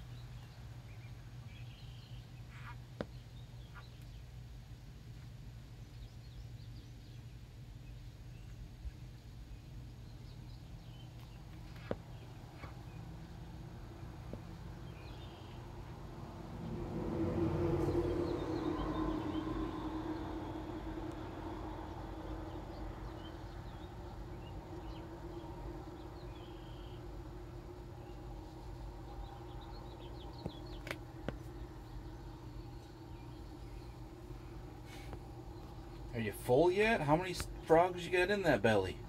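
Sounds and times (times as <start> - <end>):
faint high bird chirps: 0.0 - 4.4, 14.8 - 15.8, 17.8 - 36.5
steady low hum: 0.0 - 39.0
broad rush of noise: 13.8 - 39.0.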